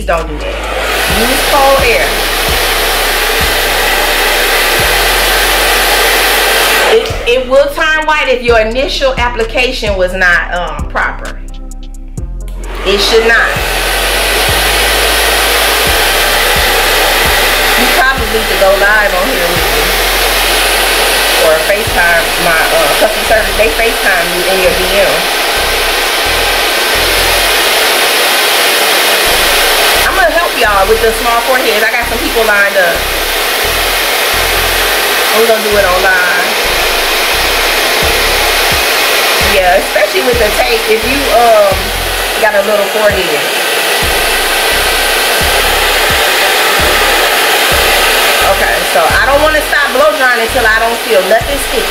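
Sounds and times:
hair dryer blowing: 0:00.0 - 0:10.8, 0:12.2 - 0:51.9.

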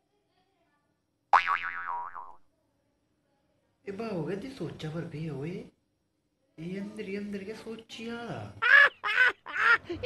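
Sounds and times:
cartoon boing sound effect: 0:01.4 - 0:02.4.

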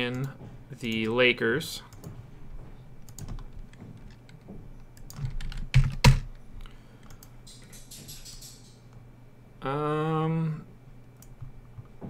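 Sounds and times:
computer keyboard typing: 0:03.1 - 0:06.3, 0:07.0 - 0:08.8.

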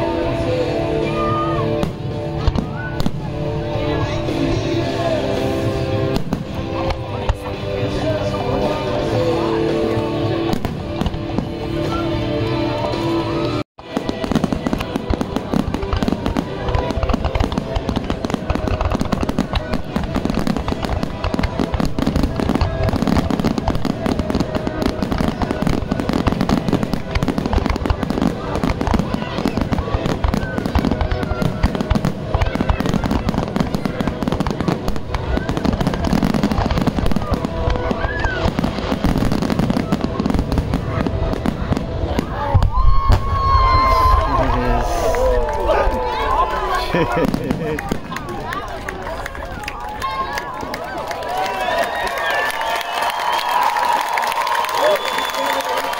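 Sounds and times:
fireworks bangs and crackle: 0:00.0 - 0:55.9.

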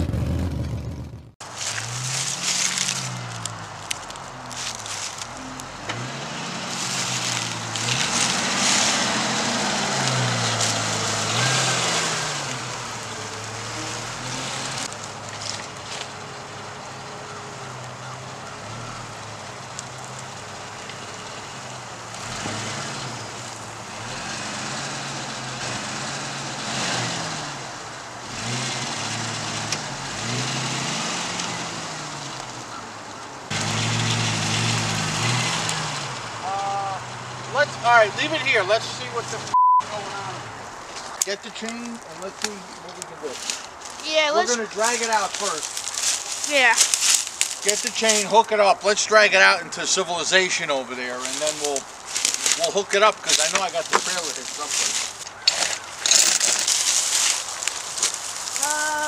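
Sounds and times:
car engine running: 0:00.0 - 0:40.7
tyres over dry grass: 0:01.4 - 0:24.1, 0:27.6 - 0:59.0.

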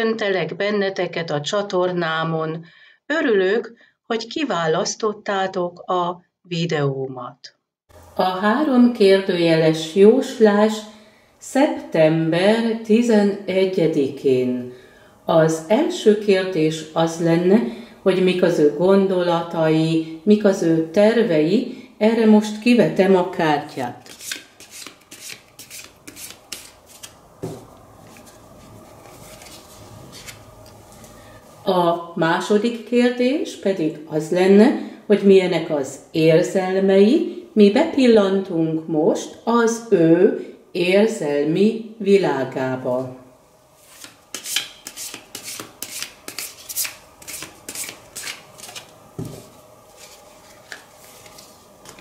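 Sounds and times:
cards shuffling: 0:24.0 - 0:27.2, 0:28.0 - 0:30.4, 0:43.8 - 0:48.9.

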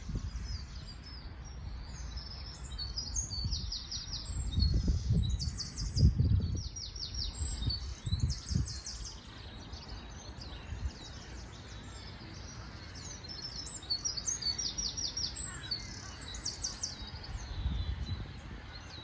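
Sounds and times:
low rumbling on microphone: 0:00.0 - 0:11.5, 0:17.0 - 0:19.0
songbirds singing: 0:00.0 - 0:19.0.

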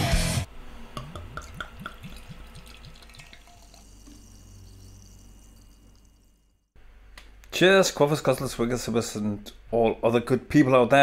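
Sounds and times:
liquid dripping: 0:01.0 - 0:06.8.

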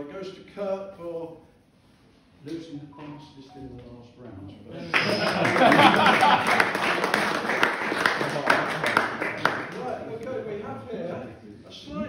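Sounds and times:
audience clapping: 0:04.8 - 0:10.3
laughter: 0:04.9 - 0:06.8.

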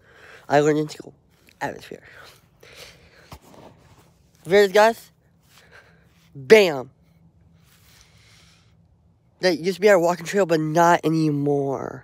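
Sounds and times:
phone rustling against fabric: 0:03.1 - 0:04.6.

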